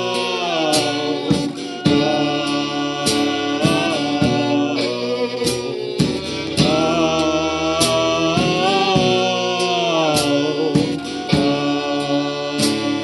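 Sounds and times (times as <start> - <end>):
fiddle: 0.0 - 13.0
man singing: 0.0 - 13.0
strummed acoustic guitar: 0.0 - 13.0.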